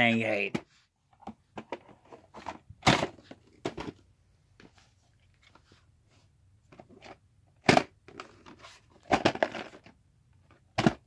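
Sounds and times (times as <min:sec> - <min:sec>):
plastic cassettes clicking and knocking: 0:00.4 - 0:04.7, 0:06.7 - 0:11.0.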